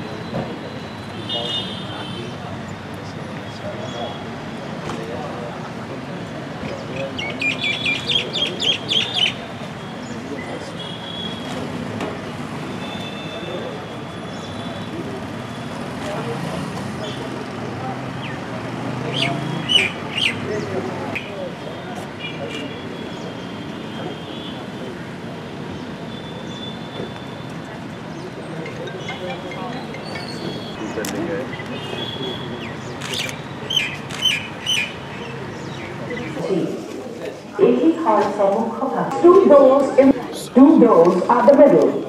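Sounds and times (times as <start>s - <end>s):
murmur of background voices: 0.0s - 42.0s
traffic hum: 0.0s - 42.0s
bird chirping: 7.2s - 9.4s, 19.1s - 20.5s, 31.5s - 36.4s.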